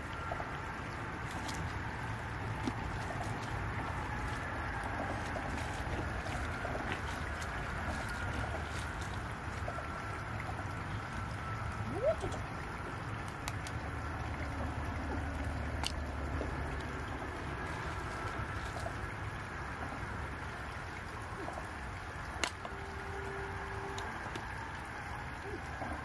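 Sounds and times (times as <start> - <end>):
trickling water: 0.0 - 26.0.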